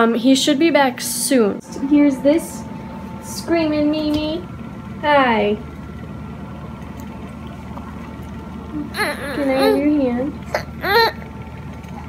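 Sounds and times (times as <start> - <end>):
low indoor hum: 0.0 - 12.0.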